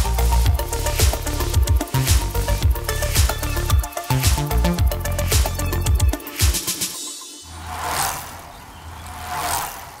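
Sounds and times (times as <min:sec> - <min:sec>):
whooshes: 0:07.4 - 0:10.0.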